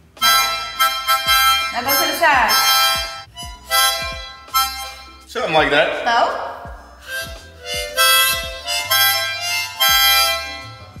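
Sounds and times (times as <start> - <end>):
toy harmonica chords: 0.2 - 5.4, 6.9 - 11.0.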